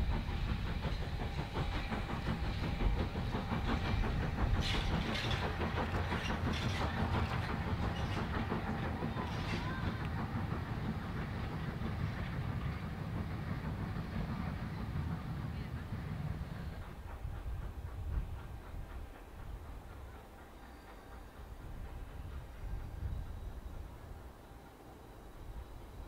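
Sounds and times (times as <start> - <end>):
train wheels rumbling on rails: 0.0 - 26.0.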